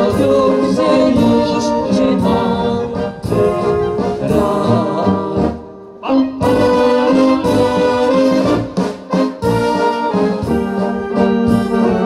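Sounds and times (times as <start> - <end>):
man and woman singing: 0.0 - 8.3
brass band playing: 0.0 - 12.0.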